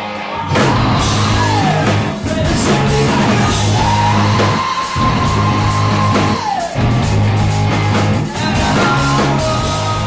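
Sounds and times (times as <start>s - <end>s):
drum kit: 0.0s - 10.0s
electric guitar: 0.0s - 10.0s.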